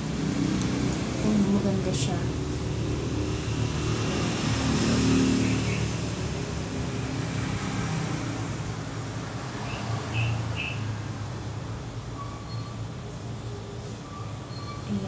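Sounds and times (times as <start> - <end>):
rumble of passing vehicles: 0.0 - 15.0.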